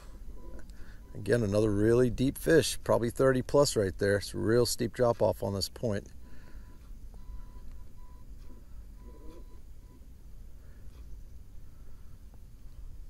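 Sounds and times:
short beeps: 0:00.1 - 0:01.8, 0:06.5 - 0:10.1.

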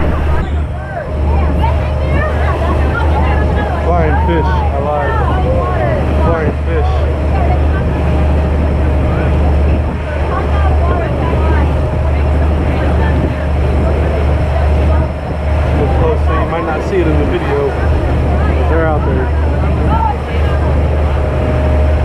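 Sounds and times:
motorboat engine humming: 0:00.0 - 0:22.0
water rushing along hull: 0:00.0 - 0:22.0.

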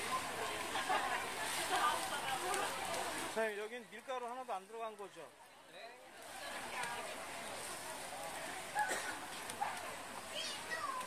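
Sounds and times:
market crowd chatter: 0:00.0 - 0:11.0.

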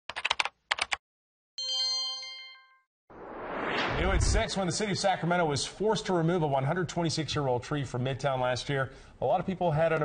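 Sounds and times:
bright chime chord: 0:01.6 - 0:02.9
rising whoosh: 0:03.1 - 0:05.5.

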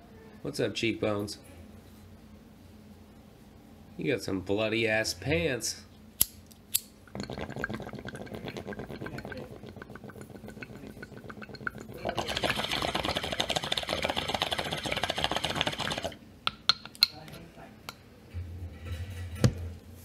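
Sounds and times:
crackling rattling noise: 0:07.1 - 0:16.2.

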